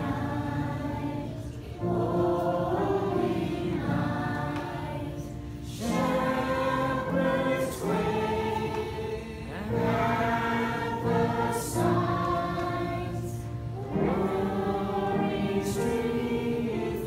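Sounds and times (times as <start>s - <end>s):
congregation singing a hymn: 0.0s - 17.0s.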